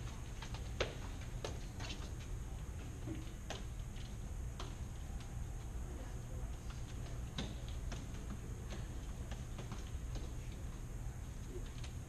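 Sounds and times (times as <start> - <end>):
low hum of fans: 0.0 - 12.0.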